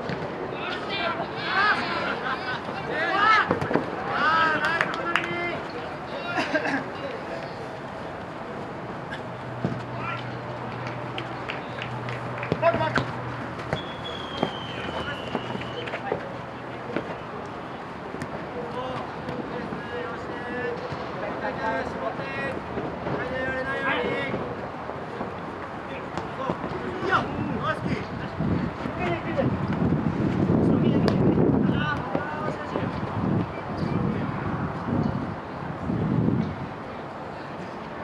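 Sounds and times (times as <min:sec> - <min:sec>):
outdoor background noise: 0:00.0 - 0:38.0
players shouting: 0:00.5 - 0:06.6, 0:11.2 - 0:16.2.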